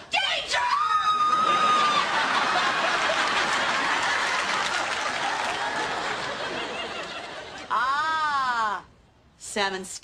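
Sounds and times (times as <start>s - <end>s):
high-pitched yell: 0.1s - 2.1s
audience applauding: 1.2s - 7.7s
audience laughing: 1.2s - 7.7s.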